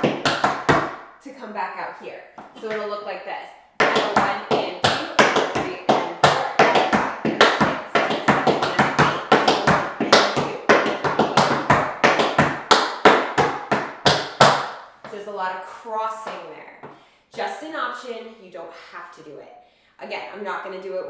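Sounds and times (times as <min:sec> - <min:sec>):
tap shoes on wooden board: 0:00.0 - 0:01.0, 0:03.8 - 0:15.2.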